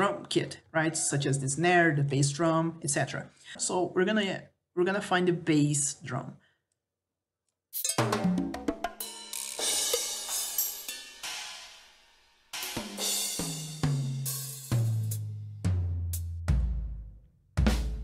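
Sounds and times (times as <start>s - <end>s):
short percussion hits: 7.8s - 11.8s
cymbals ringing: 9.0s - 14.7s
deep low drum thud: 15.6s - 18.0s.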